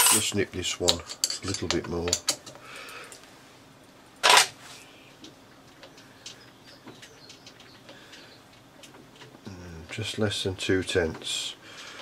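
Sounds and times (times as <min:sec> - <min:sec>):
metallic scrape: 0:00.0 - 0:00.3.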